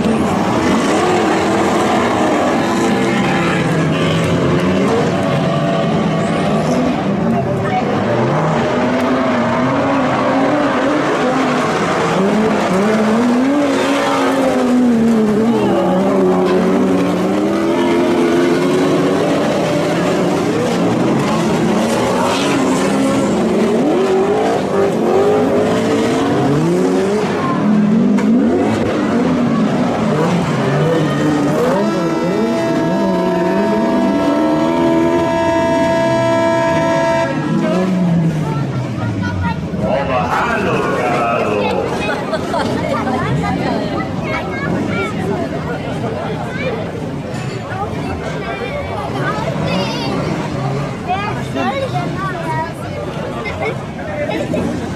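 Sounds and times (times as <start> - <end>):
stock car engines revving: 0.0 - 54.9.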